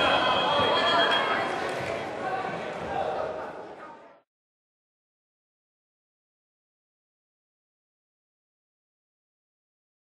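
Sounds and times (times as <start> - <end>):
voices echoing in a hall: 0.0 - 4.2.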